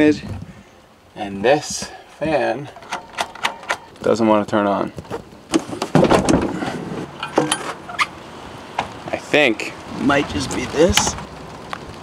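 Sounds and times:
knocks and clunks on van: 5.5s - 7.8s.

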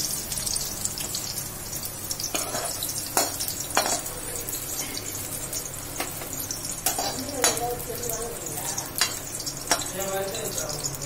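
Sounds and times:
vegetables sizzling in a pan: 0.0s - 11.0s
spatula scraping a pan: 2.3s - 4.1s.

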